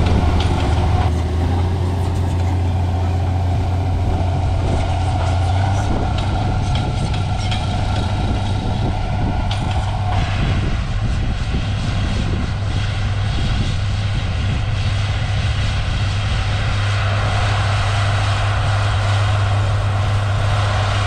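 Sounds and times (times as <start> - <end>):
tractor diesel engine running: 0.0 - 21.0.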